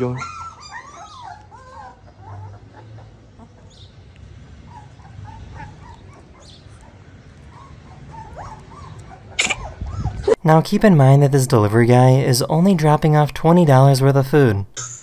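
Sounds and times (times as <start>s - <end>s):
puppy whimpering: 0.0s - 3.8s, 4.7s - 10.4s.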